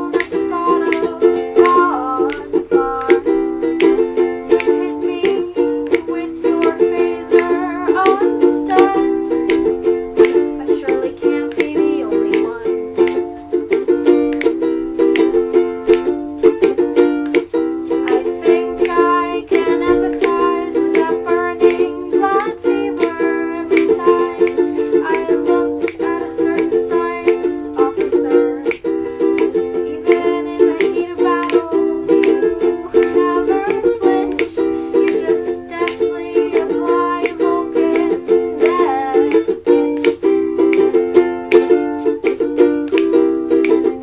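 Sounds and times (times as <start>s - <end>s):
woman singing: 0.0s - 14.6s, 15.2s - 44.0s
ukulele strumming: 0.0s - 44.0s.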